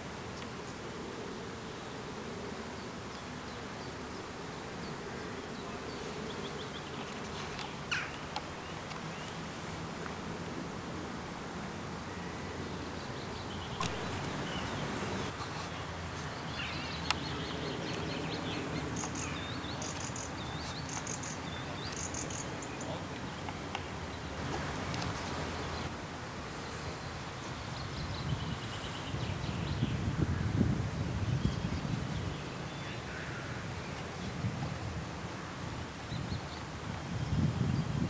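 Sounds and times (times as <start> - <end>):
flying insects buzzing: 0.0 - 36.0
low background noise: 0.0 - 38.0
birds chirping: 2.8 - 9.9, 12.1 - 25.9.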